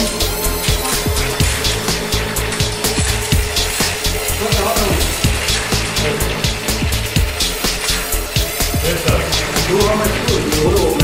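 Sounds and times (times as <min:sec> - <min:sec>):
machine mechanical hum: 0:00.0 - 0:11.0
music: 0:00.0 - 0:11.0.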